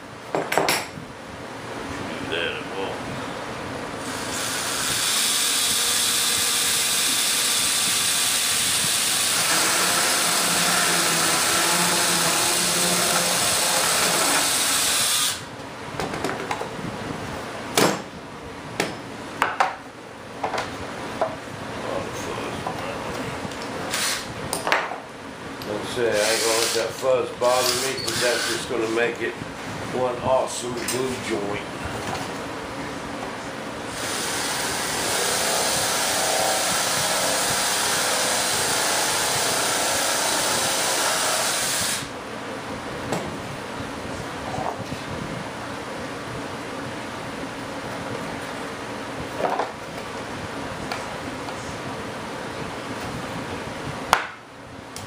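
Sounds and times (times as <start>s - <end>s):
cordless drill boring: 4.0s - 15.4s, 33.9s - 42.1s.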